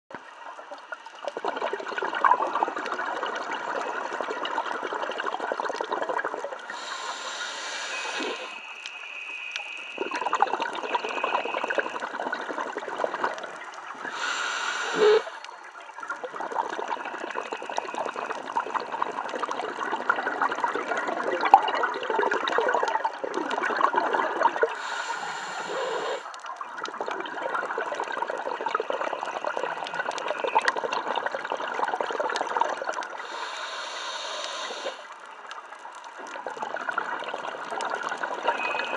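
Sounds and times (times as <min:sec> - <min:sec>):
gurgling exhaust bubbles: 0:01.2 - 0:06.9, 0:10.0 - 0:15.4, 0:16.2 - 0:24.9, 0:25.7 - 0:33.6
regulator hissing inhalation: 0:06.7 - 0:12.0, 0:14.0 - 0:15.5, 0:24.7 - 0:26.4, 0:33.2 - 0:35.2.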